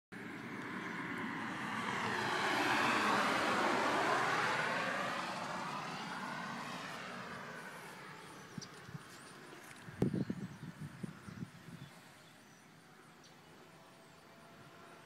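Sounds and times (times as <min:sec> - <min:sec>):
passing vehicle engine rushing: 0:00.2 - 0:10.1.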